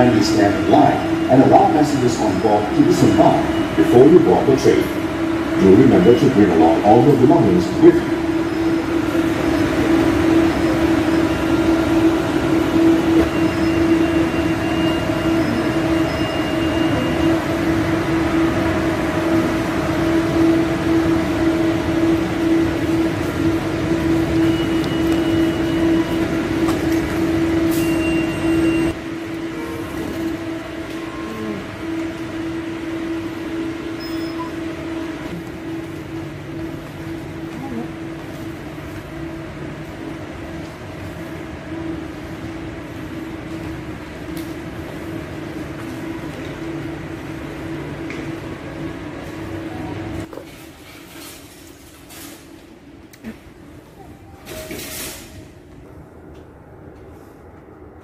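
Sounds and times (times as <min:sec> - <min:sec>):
electric train humming: 0:00.0 - 0:50.3, 0:51.6 - 0:58.0.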